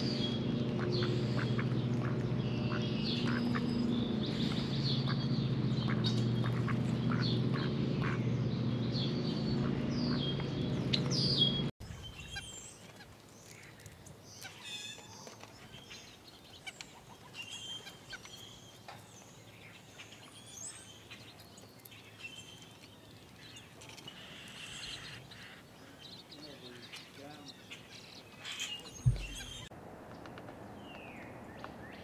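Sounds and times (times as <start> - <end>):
steady low drone: 0.0 - 11.7
birds chirping: 0.0 - 32.0.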